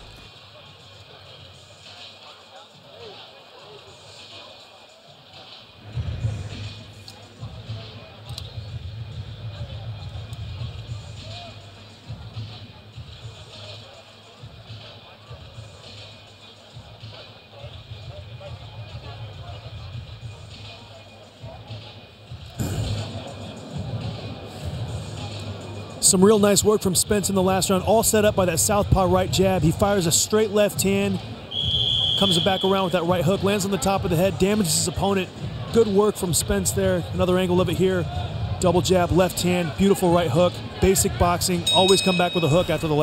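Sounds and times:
arena crowd chatter: 0.0 - 43.0
heavy bass music: 22.6 - 26.2.

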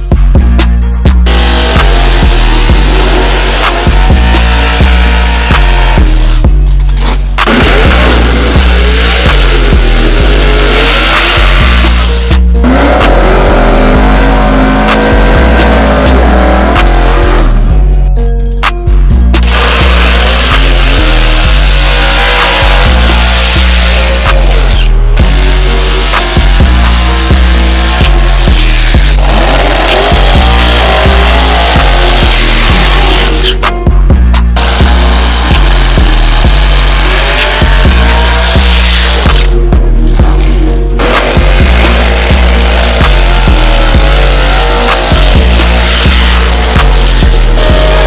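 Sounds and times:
music with heavy bass beat: 0.0 - 48.0
car engines revving hard: 1.1 - 17.8, 19.4 - 33.7, 34.4 - 48.0
tyres squealing: 19.4 - 33.6.

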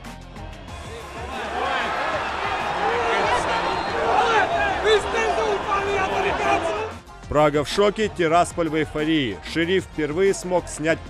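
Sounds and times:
stadium crowd shouting: 0.8 - 7.0.

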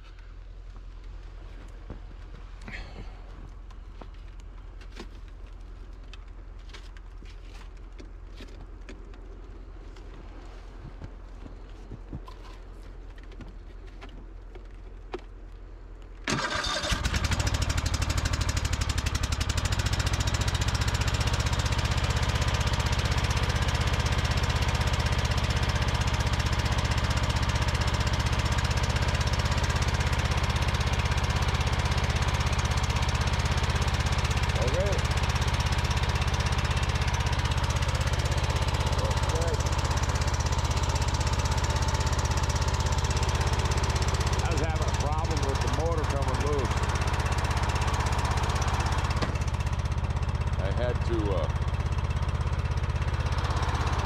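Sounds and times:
snowblower engine starting and running: 16.2 - 54.0.

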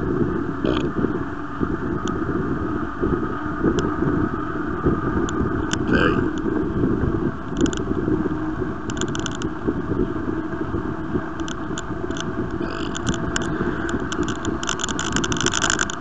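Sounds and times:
wind rush on microphone: 0.0 - 16.0
light clicking and rattling: 7.5 - 7.9, 8.9 - 9.5, 11.4 - 16.0.

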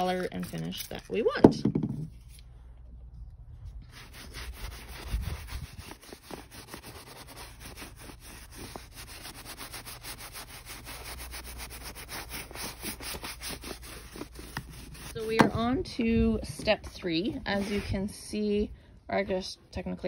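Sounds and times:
hand rubbing stiff fabric: 3.9 - 15.8, 16.6 - 18.1.

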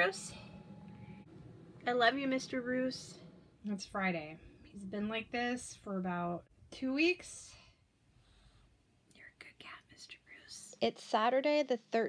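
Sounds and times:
faint whisper: 9.1 - 10.8.

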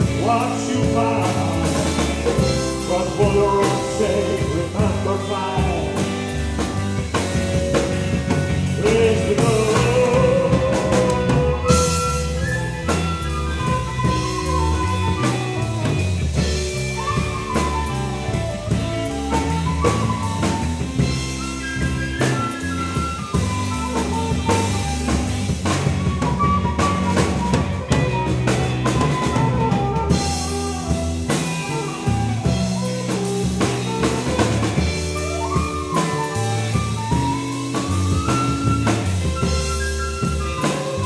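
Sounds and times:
drum kit: 0.0 - 41.0
electric bass: 0.0 - 41.0
electric guitar: 0.0 - 41.0
keyboards: 0.0 - 41.0
lead guitar line: 0.0 - 41.0.

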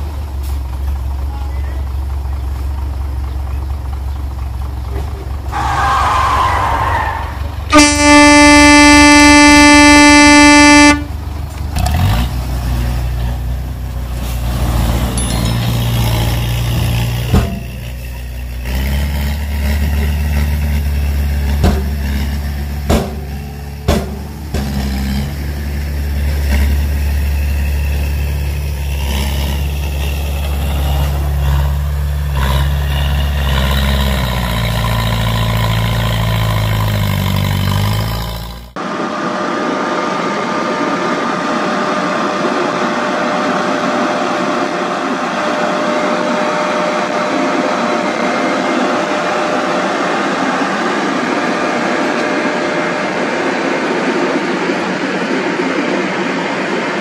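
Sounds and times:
low engine-like drone: 0.0 - 14.3, 38.6 - 57.0
truck horn blast: 7.7 - 11.2
sharp knocks: 21.6 - 22.2, 22.9 - 25.0.

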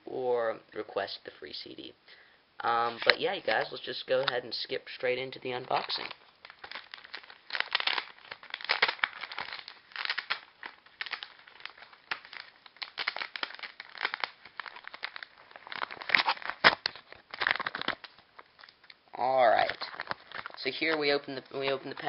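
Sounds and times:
paper envelope tearing: 2.8 - 4.4, 5.7 - 18.1.

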